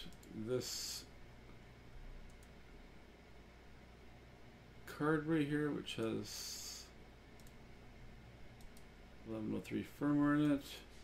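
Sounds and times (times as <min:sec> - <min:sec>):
computer mouse clicks: 0:00.0 - 0:00.4, 0:02.2 - 0:02.6, 0:07.3 - 0:07.6, 0:08.5 - 0:08.9
low steady hum: 0:00.0 - 0:11.0.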